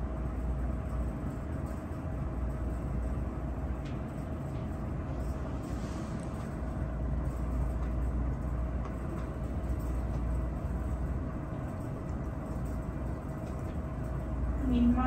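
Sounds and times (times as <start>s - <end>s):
low room rumble: 0.0s - 15.0s
thin steady hum: 0.0s - 15.0s.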